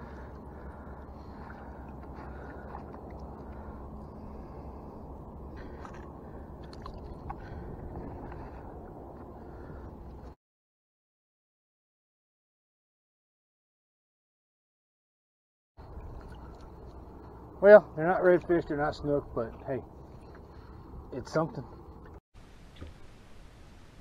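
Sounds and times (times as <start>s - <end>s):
small water splashes: 0.0s - 4.8s, 5.5s - 8.6s, 15.8s - 17.3s
steady low rumble: 0.0s - 10.4s.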